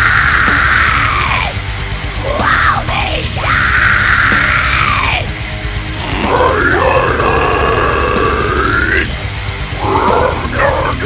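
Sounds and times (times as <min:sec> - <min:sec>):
harsh screamed vocals: 0:00.0 - 0:01.6, 0:02.2 - 0:05.3, 0:06.0 - 0:09.1, 0:09.8 - 0:11.0
heavy drums and guitars: 0:00.0 - 0:11.0.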